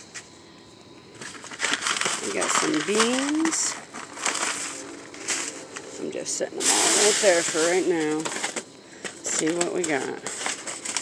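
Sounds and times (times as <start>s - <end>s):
paper packets rustling and crinkling: 1.1s - 11.0s.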